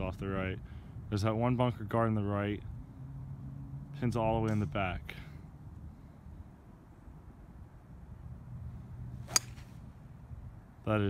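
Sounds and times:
golf club striking ball: 9.2 - 9.9.

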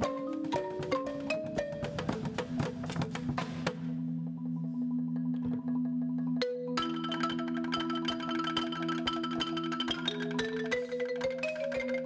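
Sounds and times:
marimba ensemble playing: 0.0 - 12.0.

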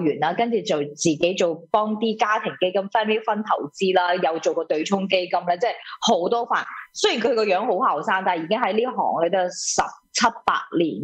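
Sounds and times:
person talking: 0.0 - 11.0.

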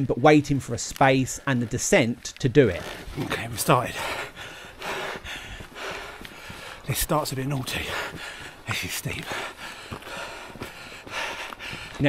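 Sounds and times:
man gasping heavily: 3.4 - 12.0.

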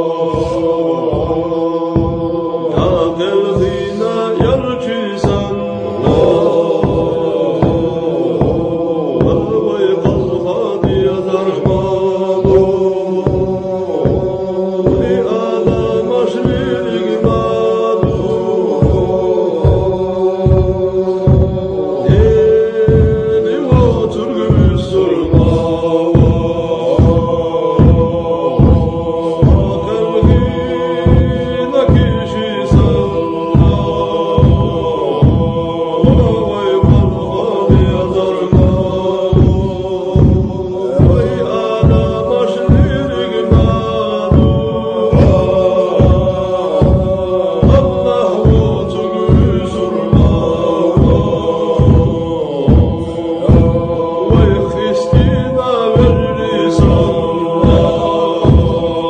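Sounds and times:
chanted vocal music with beat: 0.0 - 59.0.

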